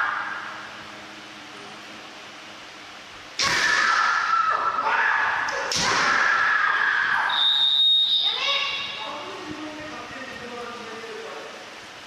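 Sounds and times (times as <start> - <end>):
shrill high-pitched cry: 6.2 - 9.0.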